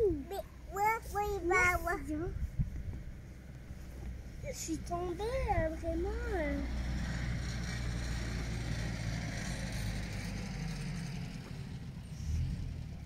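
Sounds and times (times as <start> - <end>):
steady low rumble: 0.0 - 9.6.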